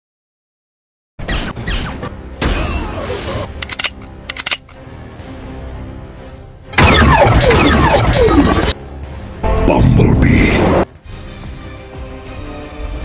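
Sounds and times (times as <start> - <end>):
music: 1.2 - 13.0
quick sharp clicks: 3.6 - 4.8
sci-fi sound effects: 6.8 - 8.8.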